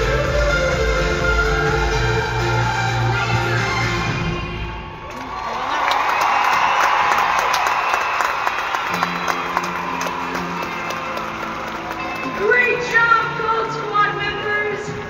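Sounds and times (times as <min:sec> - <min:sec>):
crowd cheering and screaming: 0:04.9 - 0:13.0
people clapping: 0:05.0 - 0:13.5.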